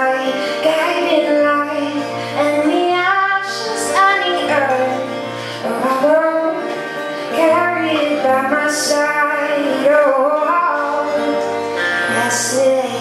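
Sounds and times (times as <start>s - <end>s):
acoustic guitar: 0.0s - 13.0s
woman singing slow melody: 0.0s - 13.0s.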